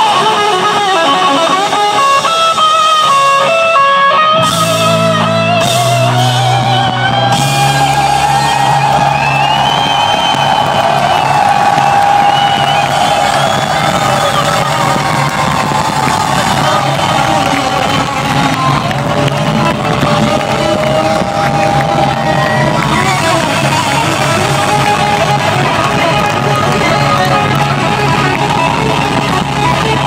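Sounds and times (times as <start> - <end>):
electric guitar sustained notes: 0.0 - 30.0
rock concert crowd cheering: 0.0 - 30.0.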